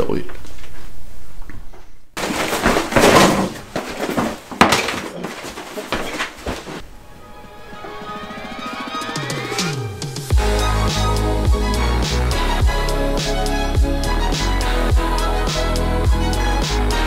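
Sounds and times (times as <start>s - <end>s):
music: 7.1s - 17.0s.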